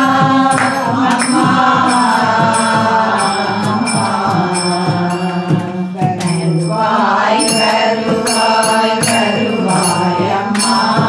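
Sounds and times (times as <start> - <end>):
hand clapping: 0.0 - 4.0, 5.6 - 6.4, 8.2 - 11.0
group chanting together: 0.0 - 11.0
ringing percussion: 0.0 - 11.0.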